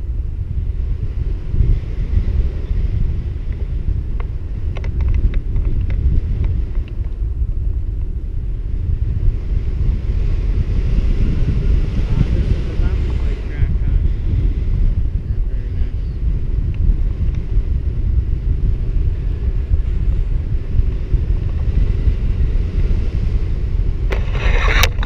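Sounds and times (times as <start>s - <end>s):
wind buffeting microphone: 0.0s - 25.0s
loud rustling scrape: 24.1s - 25.0s.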